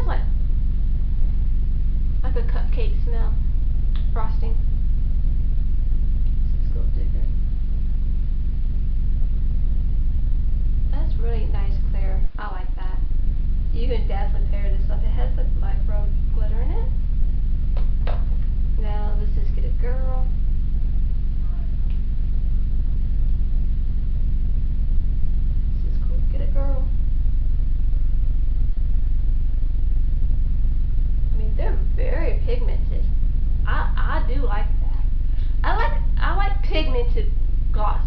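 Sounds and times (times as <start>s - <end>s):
low background hum: 0.0s - 38.0s
steady low rumble: 0.0s - 38.0s.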